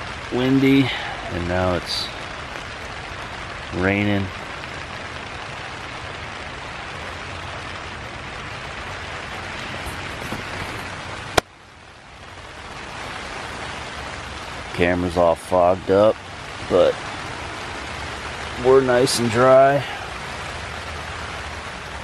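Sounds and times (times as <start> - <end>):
rain on tent fabric: 0.0 - 22.0.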